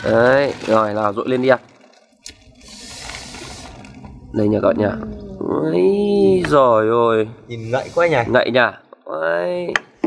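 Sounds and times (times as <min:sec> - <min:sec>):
liquid trickling and splattering: 0:00.0 - 0:04.3.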